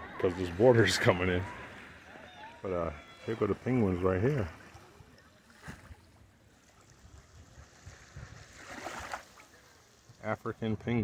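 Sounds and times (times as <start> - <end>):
small waves lapping on rocks: 3.2 - 10.4.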